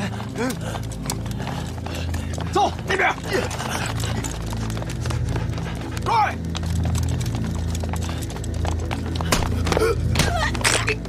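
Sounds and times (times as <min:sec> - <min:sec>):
running boots on pavement: 0:00.0 - 0:10.6
steady low drone: 0:00.0 - 0:11.0.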